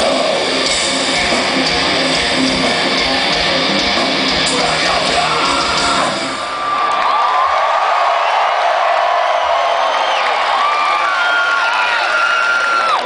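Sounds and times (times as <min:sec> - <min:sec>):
crowd cheering and screaming: 0:00.0 - 0:13.0
whoops and shouts: 0:06.5 - 0:13.0.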